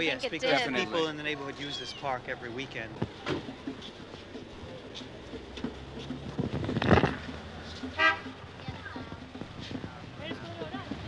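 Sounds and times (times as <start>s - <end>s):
faint background voices: 7.0s - 11.0s.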